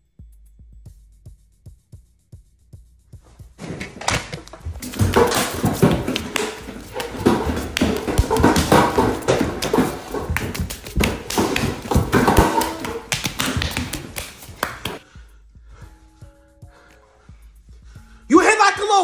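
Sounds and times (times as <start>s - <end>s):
scuffle taps thumps and rustling: 3.6s - 15.0s.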